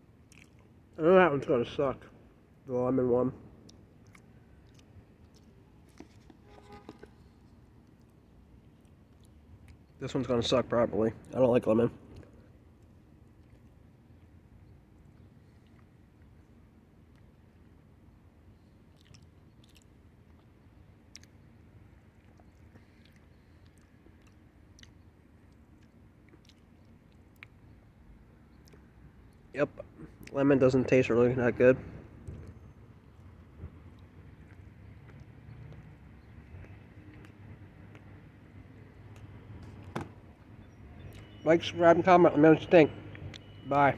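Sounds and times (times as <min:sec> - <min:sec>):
faint chewing: 0:00.2 - 0:00.8, 0:03.6 - 0:10.0, 0:12.1 - 0:17.7, 0:18.8 - 0:27.9, 0:28.5 - 0:29.4, 0:32.2 - 0:39.9
small mouth clicks: 0:00.3 - 0:00.7, 0:03.6 - 0:06.2, 0:18.9 - 0:21.4, 0:22.1 - 0:27.7, 0:28.5 - 0:28.9.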